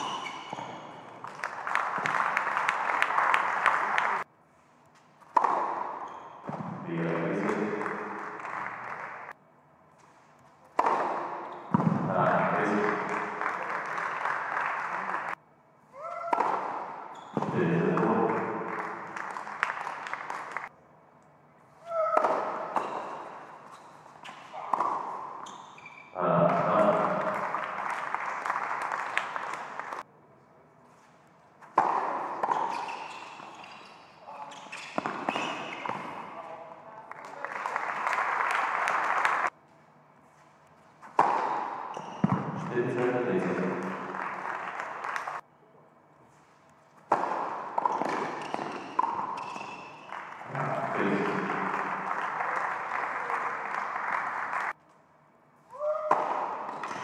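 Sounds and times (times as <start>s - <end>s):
tennis ball bouncing on hard court: 0.0s - 1.4s, 5.2s - 6.8s, 10.8s - 12.1s, 16.2s - 19.7s, 22.0s - 23.5s, 24.2s - 25.6s, 31.6s - 33.7s, 34.5s - 36.3s, 41.0s - 42.7s, 47.0s - 50.2s, 56.1s - 57.0s
rackets striking ball: 5.2s - 8.4s, 10.7s - 13.3s, 16.2s - 19.7s, 22.0s - 23.6s, 24.2s - 25.4s, 31.6s - 33.5s, 34.9s - 36.3s, 41.0s - 44.1s, 47.0s - 51.1s, 56.0s - 57.0s.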